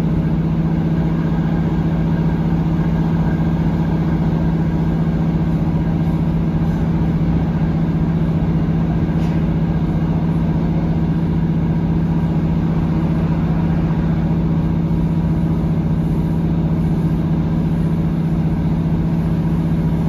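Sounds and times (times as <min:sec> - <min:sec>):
train engine drone: 0:00.0 - 0:20.0
wheel and rail rumble: 0:00.0 - 0:20.0.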